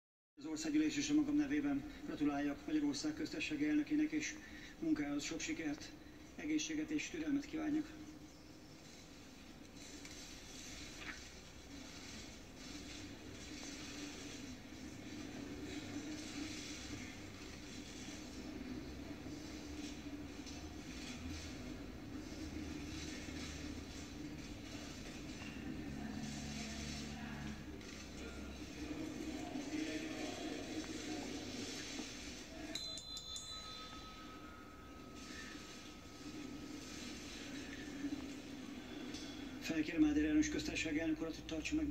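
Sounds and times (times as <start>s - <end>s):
room noise of large hall: 7.5s - 40.9s.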